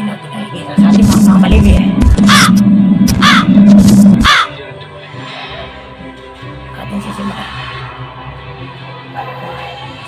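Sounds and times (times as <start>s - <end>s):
low musical drone: 0.0s - 10.0s
quiet music: 0.0s - 10.0s
crow cawing: 2.3s - 3.6s, 4.2s - 4.6s.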